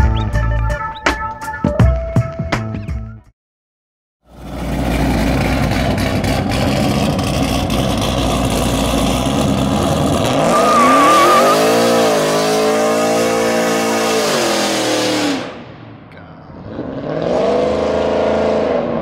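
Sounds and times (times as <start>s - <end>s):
engine revving hard: 4.4s - 15.6s, 16.6s - 19.0s.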